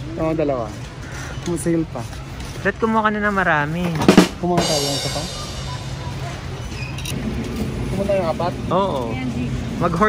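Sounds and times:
low rumble and hum of store: 0.0 - 10.0.

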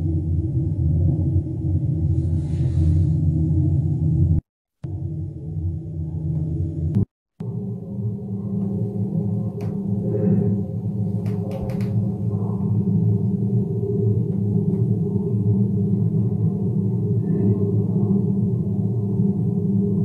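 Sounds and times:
low steady drone: 0.0 - 20.0.

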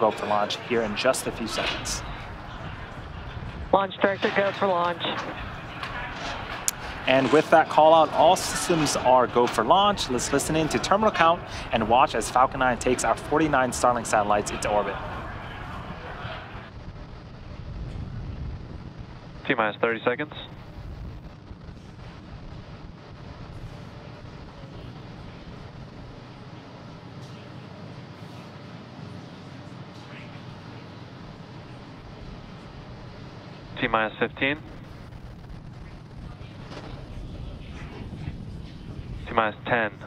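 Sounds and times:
steady background hiss: 0.0 - 40.0
steady rushing noise: 0.0 - 40.0
wind on microphone: 15.0 - 19.4, 34.7 - 39.3.

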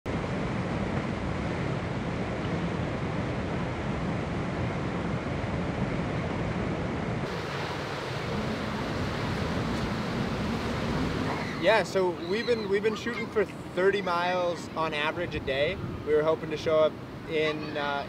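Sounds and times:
river rapids rushing: 7.3 - 14.8.

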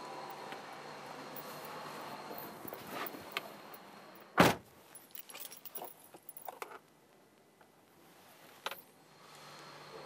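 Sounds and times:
car door slamming: 4.4 - 4.7
keys clicking and jingling: 4.9 - 6.6.

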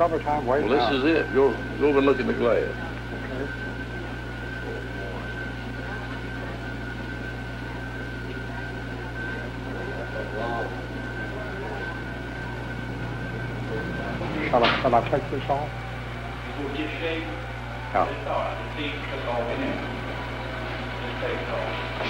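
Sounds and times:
faint murmured voices: 0.0 - 22.0
low electrical hum: 0.0 - 22.0
thin high whine: 0.0 - 22.0.

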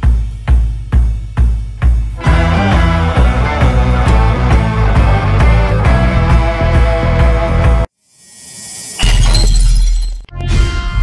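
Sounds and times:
glassy crash with bass hit: 8.8 - 10.3.

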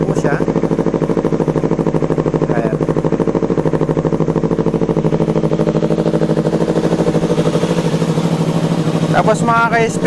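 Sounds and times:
motorcycle engine idling: 0.0 - 10.0.

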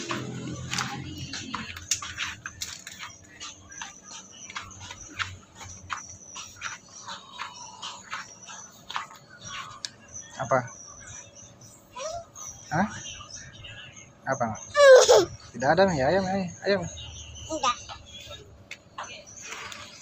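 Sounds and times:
footsteps on tiled floor: 0.0 - 10.5.

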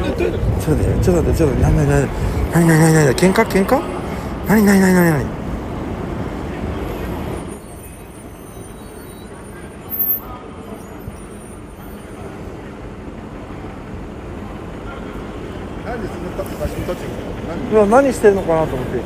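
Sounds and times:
cars passing with low rumble: 0.0 - 19.0.

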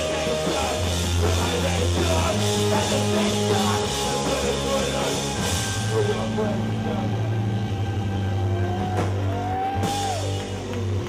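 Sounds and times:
rock band low drone: 0.0 - 11.0.

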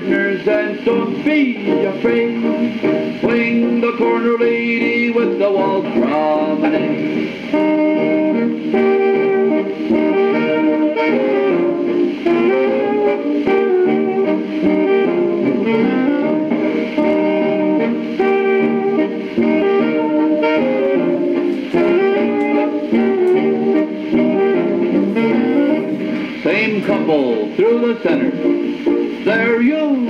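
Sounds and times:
old dance band waltz recording: 0.0 - 30.0.

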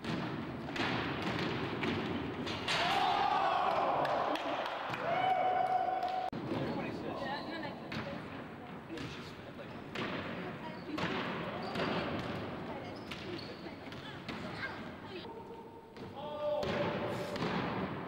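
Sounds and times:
basketball bouncing on wooden floor: 0.0 - 2.2.

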